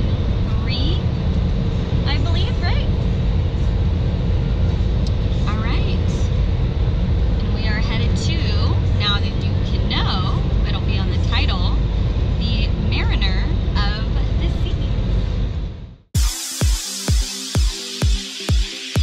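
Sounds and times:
car cabin road rumble: 0.0s - 16.1s
woman talking: 0.5s - 1.0s, 2.0s - 2.9s, 5.4s - 6.2s, 7.6s - 11.8s, 12.4s - 15.0s.

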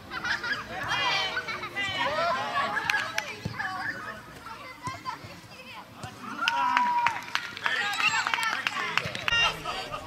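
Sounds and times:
children calling and shouting: 0.0s - 10.0s.

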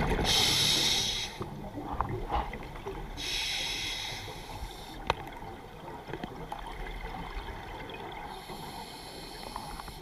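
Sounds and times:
underwater bubbles: 0.0s - 10.0s
diver breathing through regulator: 0.2s - 1.5s, 3.2s - 5.0s.

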